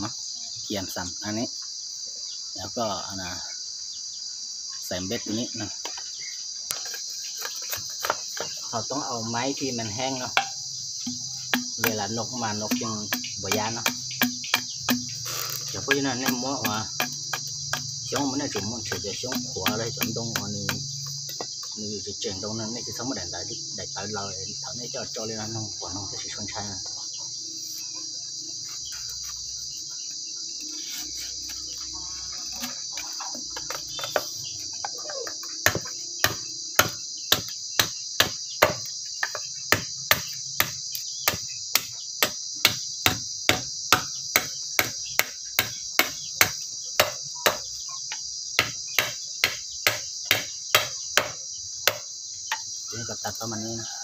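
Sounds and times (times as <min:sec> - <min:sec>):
insect chorus: 0:00.0 - 0:54.0
machete chopping bamboo: 0:10.4 - 0:20.9, 0:35.1 - 0:47.7, 0:48.6 - 0:52.1.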